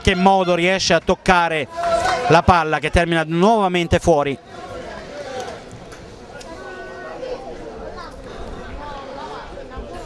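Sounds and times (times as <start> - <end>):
faint voices calling: 0.0 - 10.0.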